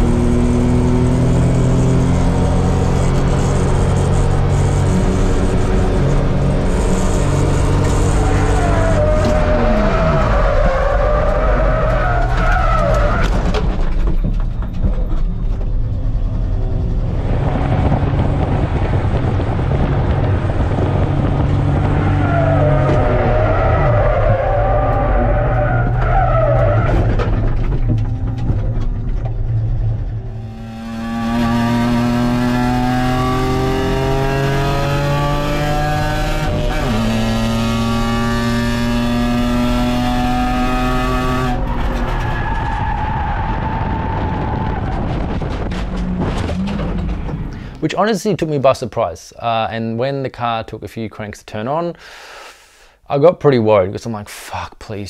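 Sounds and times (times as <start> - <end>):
car engine running hard: 0.0 - 12.1, 15.8 - 25.4, 27.9 - 47.7
race car engine revving: 0.0 - 13.3, 29.4 - 47.6.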